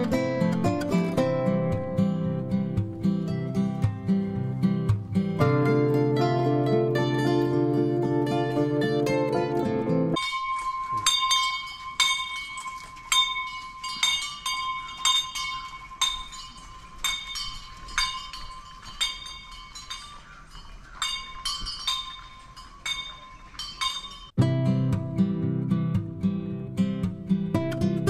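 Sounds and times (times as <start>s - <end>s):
small metal bell clinking: 10.2s - 24.4s.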